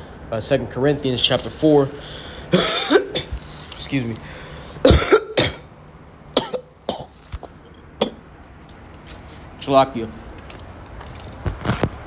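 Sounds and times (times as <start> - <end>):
man coughing: 2.5 - 3.5, 4.7 - 5.7, 6.4 - 8.3.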